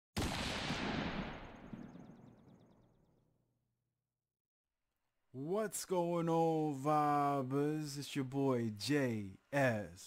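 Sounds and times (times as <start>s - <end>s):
boom impact tail: 0.2s - 2.4s.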